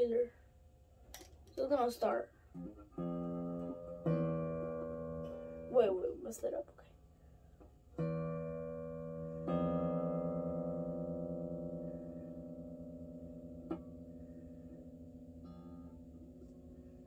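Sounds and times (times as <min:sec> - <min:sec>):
quiet plucked guitar notes: 0:02.5 - 0:06.6, 0:07.6 - 0:17.0
electric guitar chord ringing: 0:02.6 - 0:05.7, 0:08.0 - 0:17.0.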